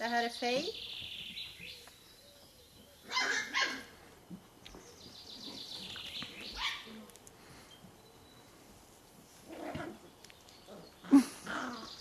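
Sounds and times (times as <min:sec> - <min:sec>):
puppy barking: 0:03.1 - 0:03.9, 0:06.6 - 0:07.0.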